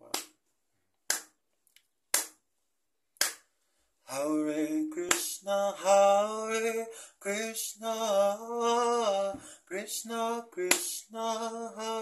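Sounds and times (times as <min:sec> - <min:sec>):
sharp hand claps: 0:00.0 - 0:00.4, 0:01.0 - 0:01.4, 0:02.1 - 0:02.4, 0:03.2 - 0:03.5, 0:05.1 - 0:05.4, 0:10.7 - 0:11.0.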